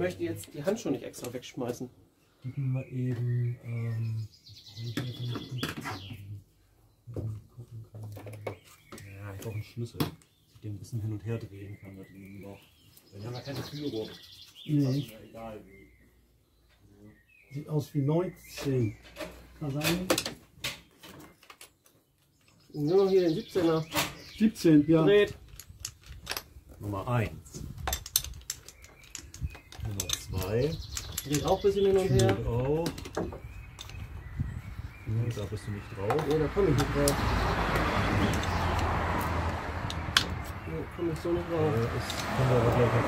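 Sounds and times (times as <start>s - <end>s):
spanner metal clicks and knocks: 27.8s - 34.0s
passing road traffic: 33.2s - 43.0s.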